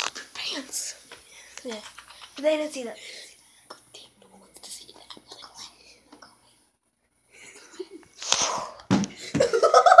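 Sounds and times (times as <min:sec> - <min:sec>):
faint whispering: 0:00.2 - 0:01.8, 0:02.8 - 0:06.6
small clicks and rustles: 0:01.6 - 0:02.5.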